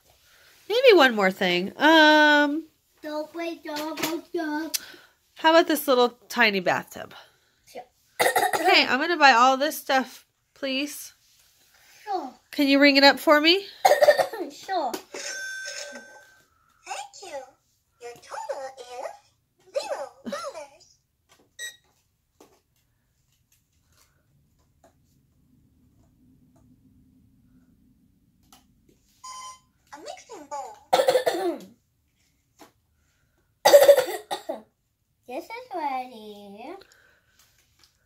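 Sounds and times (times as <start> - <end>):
child speaking: 3.0 - 4.8, 12.1 - 12.4, 14.3 - 15.0, 29.9 - 30.9, 35.3 - 36.8
child coughing: 8.2 - 8.8, 13.8 - 14.6, 30.9 - 31.7, 33.6 - 34.7.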